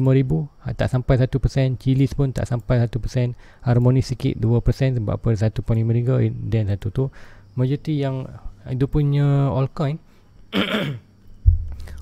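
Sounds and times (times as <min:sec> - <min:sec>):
man coughing: 0:10.5 - 0:11.1
low thump: 0:11.4 - 0:11.8.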